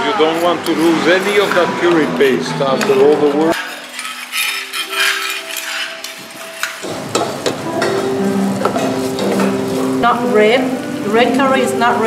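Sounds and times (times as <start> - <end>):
curry paste frying and stirred: 0.0 - 12.0
background music: 0.1 - 12.0
metal spoons clinking on pots: 2.8 - 9.6.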